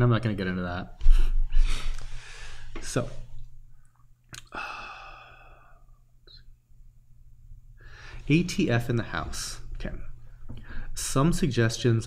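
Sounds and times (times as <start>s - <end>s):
soft sigh-like breath: 4.5s - 5.8s.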